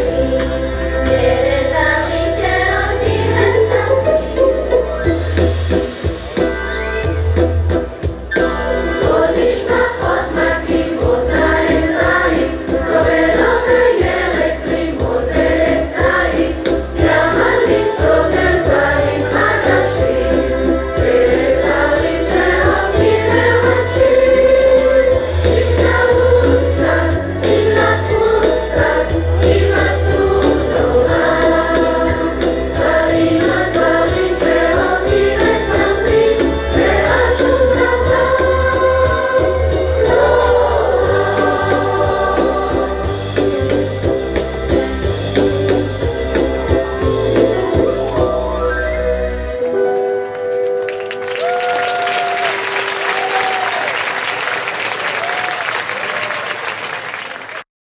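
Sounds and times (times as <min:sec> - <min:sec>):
choir singing pop song: 0:00.0 - 0:04.7, 0:08.7 - 0:43.8.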